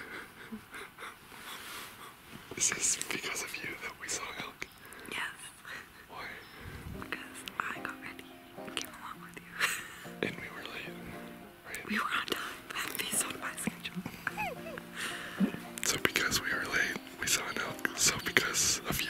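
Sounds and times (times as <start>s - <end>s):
person whispering: 2.6s - 6.4s, 10.2s - 10.9s, 11.7s - 14.8s, 15.4s - 19.0s
soft background music: 6.1s - 19.0s.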